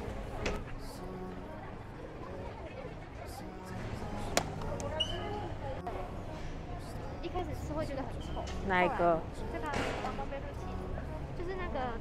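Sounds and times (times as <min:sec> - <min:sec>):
indistinct background voices: 0:00.0 - 0:12.0.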